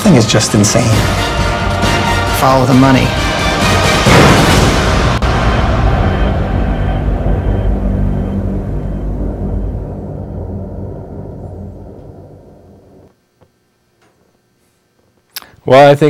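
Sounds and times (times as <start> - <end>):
dramatic low score drone: 0.0 - 13.1.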